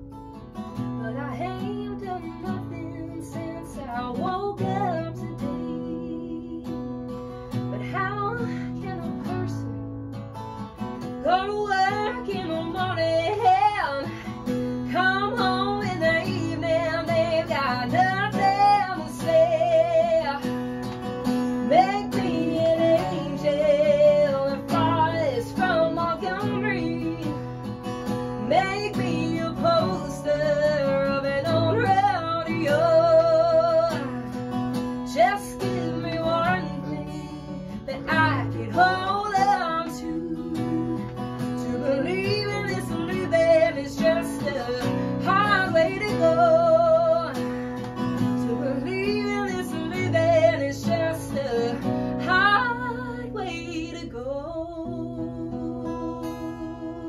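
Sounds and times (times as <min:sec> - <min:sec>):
strummed acoustic guitar: 0:00.0 - 0:57.0
woman singing with vibrato: 0:00.8 - 0:09.8, 0:11.0 - 0:57.0.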